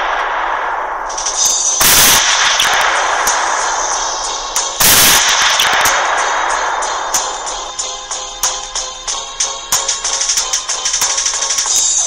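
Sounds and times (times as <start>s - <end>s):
loud gunshot: 0.0s - 7.8s
noisy crackling background: 0.0s - 8.1s.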